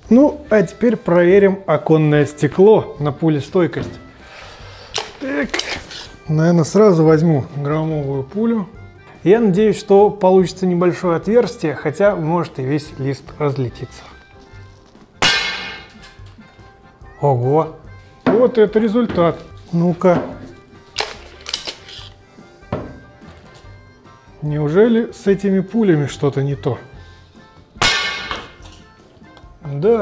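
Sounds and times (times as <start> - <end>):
pellet cracking glass with ringing: 15.2 - 16.1, 27.8 - 28.8.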